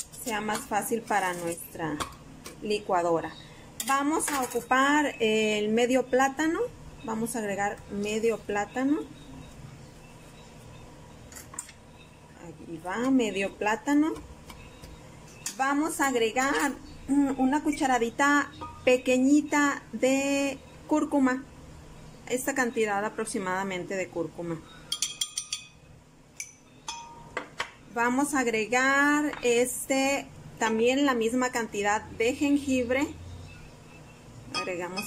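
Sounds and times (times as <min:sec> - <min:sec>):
metal spoon clinking against glass: 0:24.9 - 0:25.8, 0:26.4 - 0:27.3, 0:34.5 - 0:35.0.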